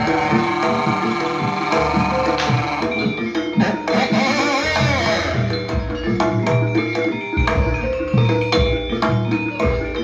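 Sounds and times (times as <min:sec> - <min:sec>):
gamelan ensemble playing: 0:00.0 - 0:10.0.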